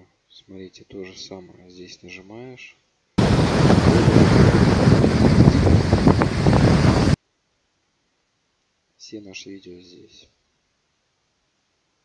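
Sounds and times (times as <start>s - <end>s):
sea waves breaking: 3.2s - 7.2s
wind buffeting microphone: 3.2s - 7.2s.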